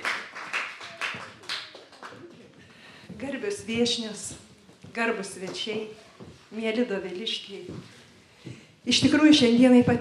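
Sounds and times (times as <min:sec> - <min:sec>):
hands clapping: 0:00.0 - 0:02.5.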